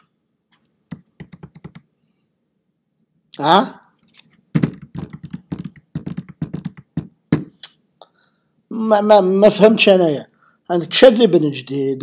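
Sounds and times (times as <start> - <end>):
quick irregular tapping: 4.6 - 7.6.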